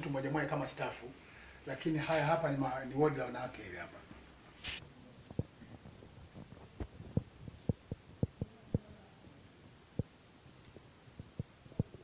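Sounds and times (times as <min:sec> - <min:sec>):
footsteps thumping: 0:04.1 - 0:08.5.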